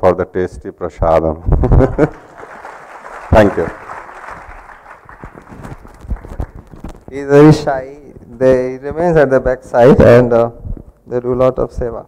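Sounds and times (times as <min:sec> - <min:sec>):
audience clapping: 0:01.8 - 0:07.4.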